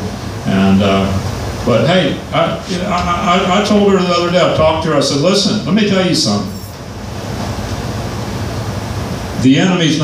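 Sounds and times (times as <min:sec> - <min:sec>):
steady rushing noise: 0:00.0 - 0:10.0.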